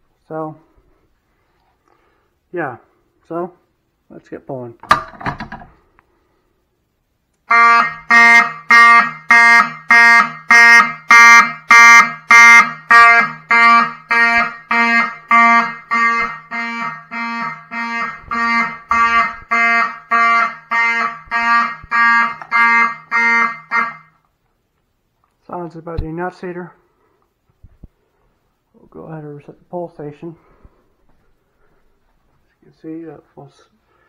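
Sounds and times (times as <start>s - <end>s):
fire alarm horns pulsing: 7.4s - 24.2s.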